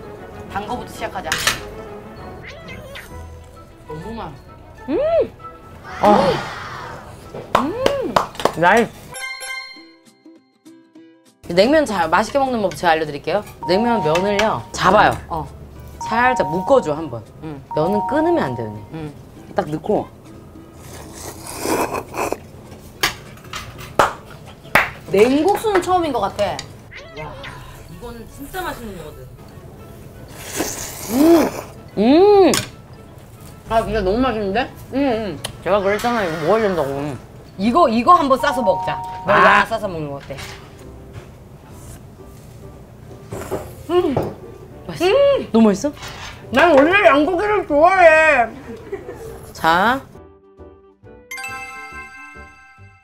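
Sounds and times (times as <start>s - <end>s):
soft background music: 0.0s - 53.0s
noodles being slurped: 20.8s - 22.4s, 30.3s - 31.8s.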